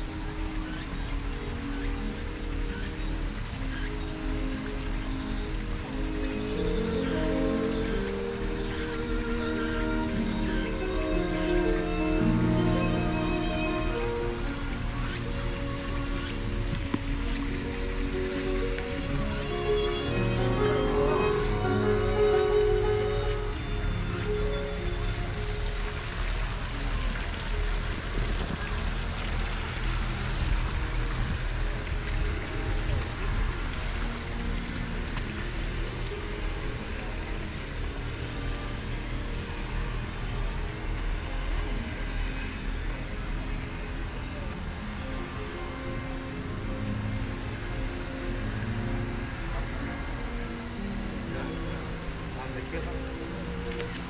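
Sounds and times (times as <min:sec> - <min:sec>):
faint music of held notes: 0:00.0 - 0:54.0
wind rumbling on microphone: 0:12.9 - 0:54.0.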